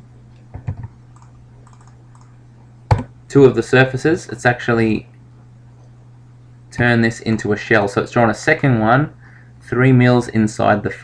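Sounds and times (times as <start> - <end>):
low electrical hum: 0.0 - 11.0
keyboard keys clicking: 0.5 - 2.3.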